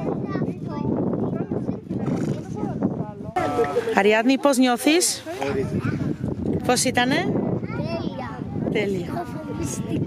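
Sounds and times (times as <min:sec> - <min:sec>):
outdoor murmur: 0:00.0 - 0:10.0
people's voices: 0:00.0 - 0:10.0.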